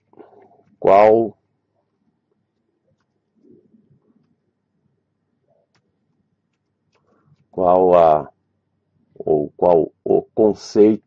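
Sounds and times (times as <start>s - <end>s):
faint low murmur: 9.0s - 11.0s.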